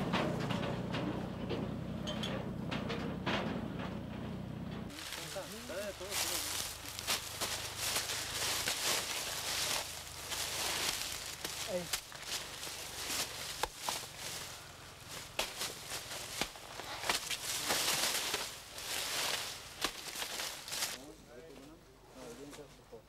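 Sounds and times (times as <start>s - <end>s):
tractor engine idling: 0.0s - 21.0s
dry leaves rustling and crackling: 4.9s - 21.1s
footsteps on leaf litter: 4.9s - 21.1s.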